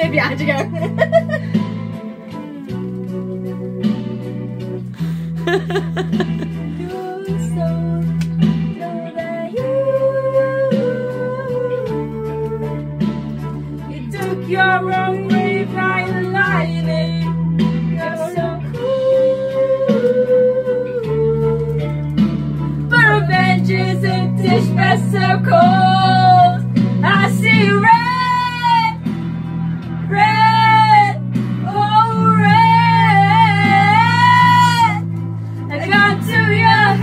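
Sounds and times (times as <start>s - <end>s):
rock backing track: 0.0s - 37.0s
women singing karaoke: 5.4s - 29.1s, 30.0s - 37.0s.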